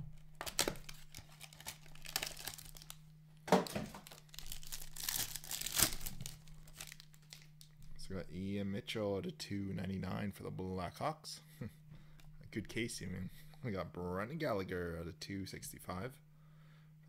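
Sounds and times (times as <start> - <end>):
foil wrapper crinkling and tearing: 0.4 - 3.0, 3.6 - 7.7.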